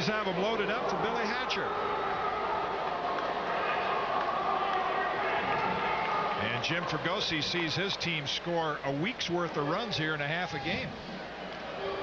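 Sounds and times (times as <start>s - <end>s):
ballpark crowd din: 0.0s - 12.0s.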